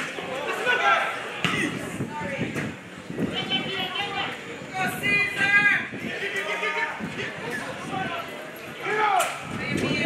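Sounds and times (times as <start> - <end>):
players and spectators shouting: 0.0 - 2.2, 3.2 - 10.0
crowd chatter: 0.0 - 10.0.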